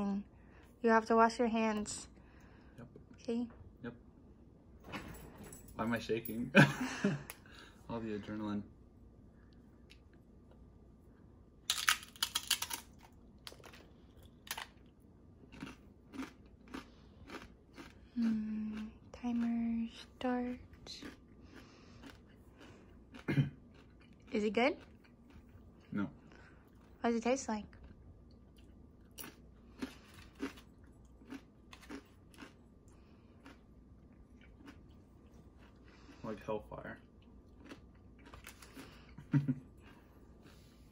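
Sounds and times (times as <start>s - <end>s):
man crunching tortilla chip: 11.7s - 14.8s, 15.5s - 18.0s, 29.2s - 32.6s, 37.6s - 39.0s
person chewing crunchy chip: 11.7s - 19.6s, 20.7s - 25.8s, 27.8s - 36.2s, 37.2s - 40.7s.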